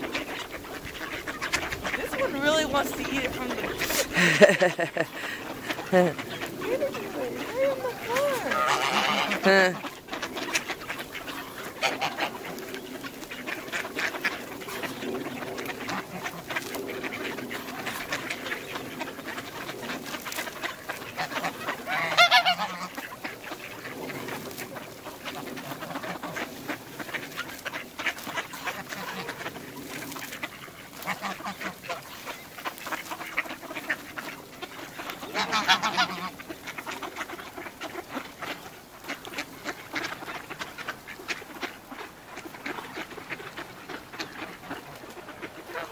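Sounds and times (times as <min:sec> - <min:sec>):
ducks quacking: 0:00.0 - 0:45.9
goose honk: 0:00.0 - 0:45.9.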